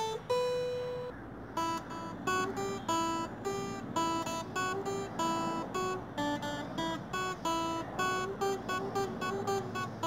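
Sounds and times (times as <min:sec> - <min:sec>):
acoustic guitar melody: 0:00.0 - 0:10.0.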